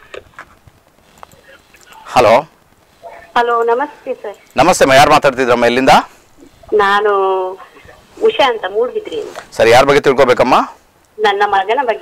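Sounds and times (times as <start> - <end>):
faint irregular clicks: 0.0 - 4.7, 10.9 - 11.2.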